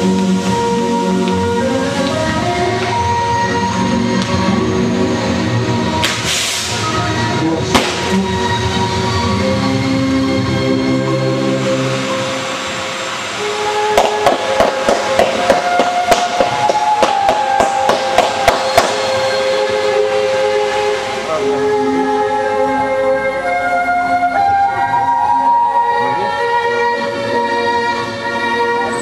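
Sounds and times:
firework fountain hissing: 0.0s - 29.0s
music: 0.0s - 29.0s
firework cracks: 7.7s - 8.2s, 13.8s - 19.4s.

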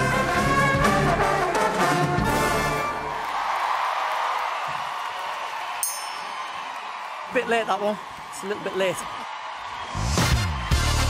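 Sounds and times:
audience applause and cheering: 0.8s - 11.0s
high ringing chime: 5.8s - 6.8s.

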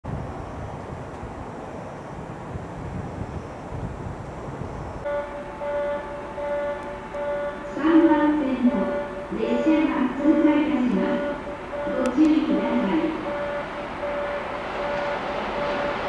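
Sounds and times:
station platform background noise: 0.1s - 16.0s
electronic chime tone: 5.1s - 7.7s, 11.2s - 12.1s, 13.2s - 15.9s
platform announcement voice: 5.1s - 15.2s.

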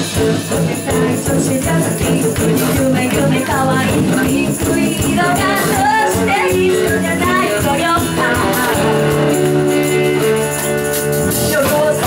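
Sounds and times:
bass guitar: 0.0s - 12.0s
drums keeping a beat: 0.0s - 12.0s
electric guitar: 0.0s - 12.0s
woman singing lead vocal: 0.1s - 9.5s, 11.4s - 12.0s.

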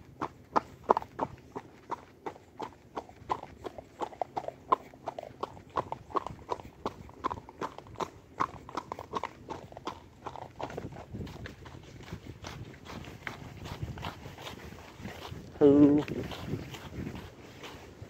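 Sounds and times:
horse hooves on gravel: 0.0s - 18.0s.

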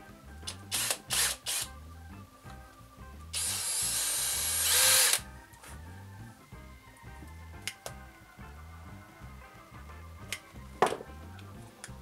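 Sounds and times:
background music: 0.0s - 12.0s
cordless drill running: 0.7s - 1.7s, 3.4s - 5.2s.

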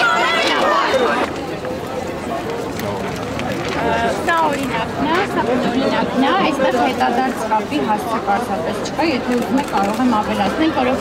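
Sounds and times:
crowd babble: 0.0s - 11.0s.

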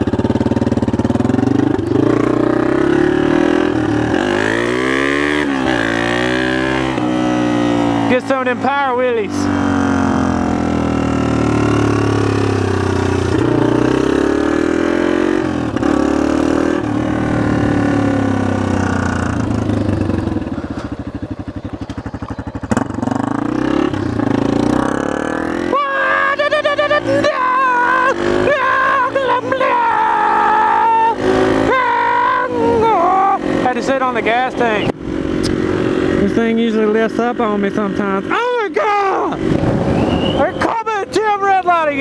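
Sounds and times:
motorcycle engine accelerating: 0.0s - 42.0s.

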